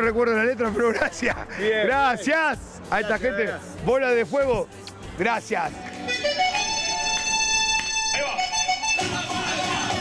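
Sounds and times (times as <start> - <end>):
held lead melody: 5.9 - 10.0.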